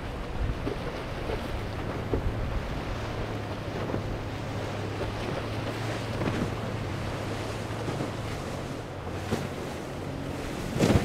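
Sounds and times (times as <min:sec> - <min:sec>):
boat engine hum: 0:00.0 - 0:11.0
spray and waves rushing: 0:00.0 - 0:11.0
wind buffeting microphone: 0:00.0 - 0:11.0.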